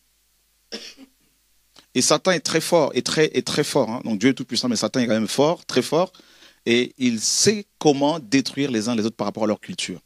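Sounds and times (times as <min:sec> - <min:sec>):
man clearing throat: 0:00.7 - 0:01.2.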